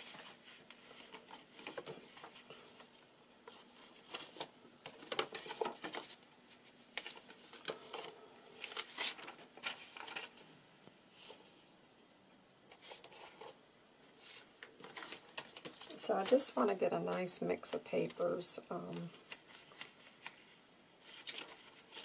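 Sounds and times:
paper sheets rustling: 0:00.0 - 0:10.5, 0:12.7 - 0:22.0.

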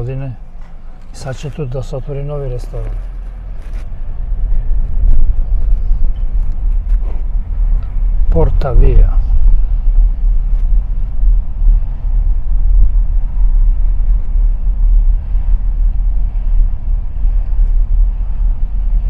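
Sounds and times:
car road and engine rumble: 0:00.0 - 0:19.0.

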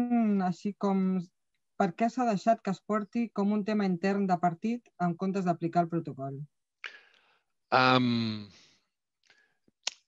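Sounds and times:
person's wordless hesitation sound: 0:07.7 - 0:08.5.

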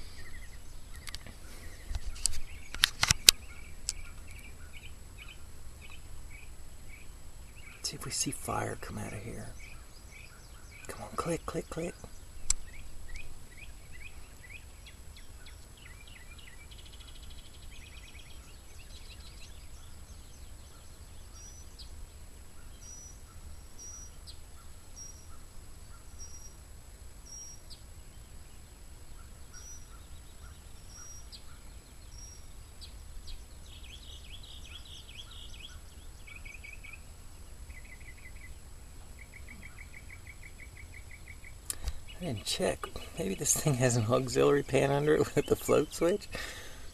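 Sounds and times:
songbirds chirping and trilling: 0:00.0 - 0:46.9
sharp click: 0:01.9 - 0:04.4.

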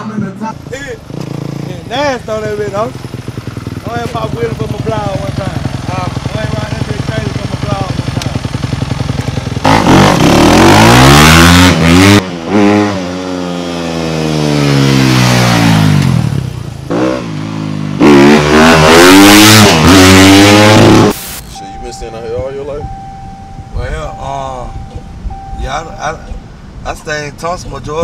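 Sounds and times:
dirt bike engine revving: 0:00.6 - 0:21.6.

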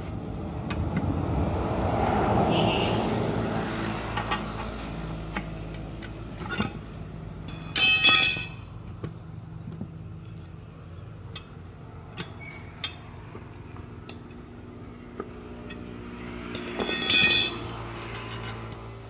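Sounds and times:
tyre irons clinking on wheel rim: 0:04.2 - 0:19.0
metallic scrape and ring: 0:07.5 - 0:08.7, 0:16.4 - 0:18.7.

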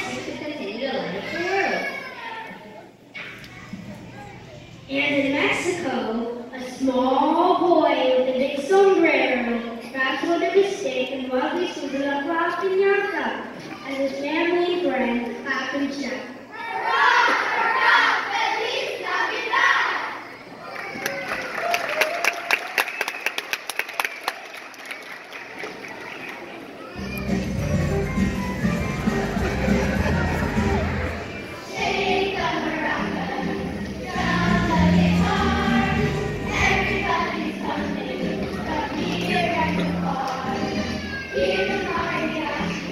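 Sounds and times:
audience applause: 0:20.6 - 0:26.9.

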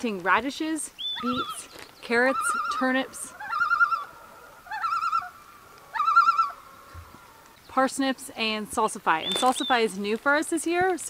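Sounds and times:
animal call with warbling tone: 0:01.1 - 0:06.7.

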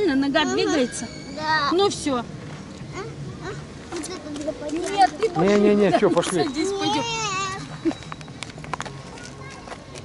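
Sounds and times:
footsteps on asphalt: 0:07.6 - 0:10.0.

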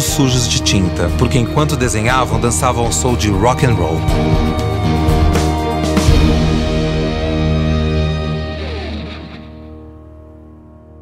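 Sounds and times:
electric guitar chord ringing: 0:00.0 - 0:11.0.

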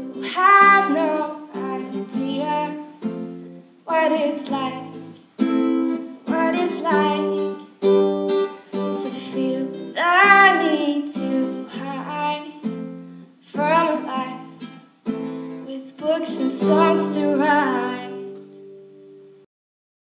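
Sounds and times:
woman singing: 0:00.0 - 0:03.1, 0:03.9 - 0:05.2, 0:05.8 - 0:08.0, 0:08.7 - 0:12.8, 0:13.5 - 0:14.7, 0:15.5 - 0:18.4
acoustic guitar strumming: 0:00.0 - 0:19.4.

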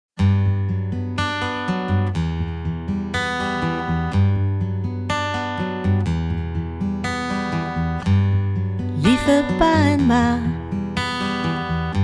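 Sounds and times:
acoustic guitar chords ringing: 0:00.2 - 0:12.0.

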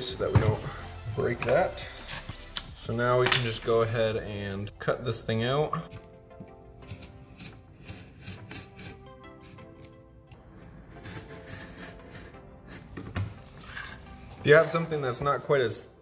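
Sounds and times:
soft background music: 0:00.0 - 0:16.0
knife cutting cardboard: 0:06.8 - 0:10.0, 0:10.8 - 0:12.9.

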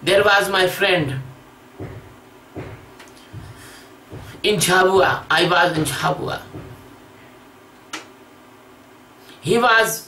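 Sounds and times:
man's voice: 0:00.0 - 0:01.3, 0:04.2 - 0:06.6.

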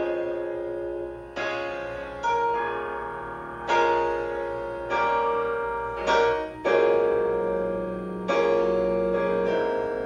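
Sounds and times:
gospel piano chords: 0:00.0 - 0:10.0.

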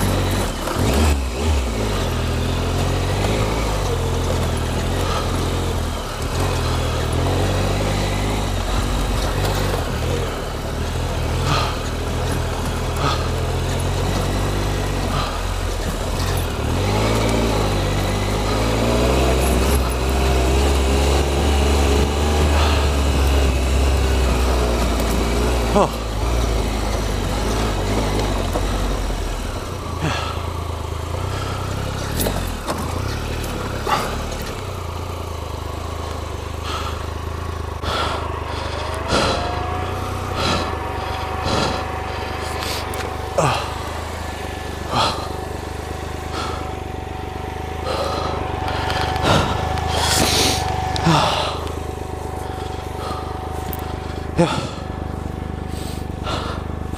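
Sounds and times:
motorcycle engine running: 0:00.0 - 0:56.9
wheels and suspension knocking: 0:00.0 - 0:56.9.

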